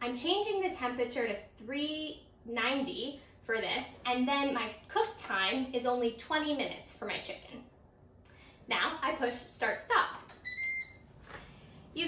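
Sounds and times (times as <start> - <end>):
air fryer beep: 10.3 - 11.1.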